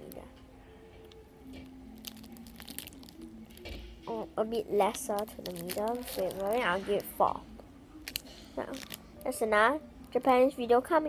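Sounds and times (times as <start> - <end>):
plastic wrapper crinkling: 1.6 - 9.4.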